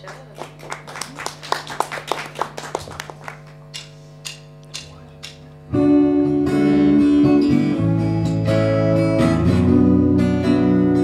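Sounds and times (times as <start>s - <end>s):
audience clapping: 0.0s - 5.4s
low electrical hum: 0.0s - 11.0s.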